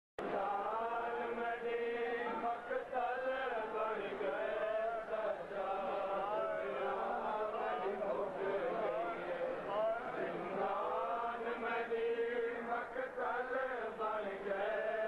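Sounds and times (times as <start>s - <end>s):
men chanting a lament: 0.2s - 15.0s.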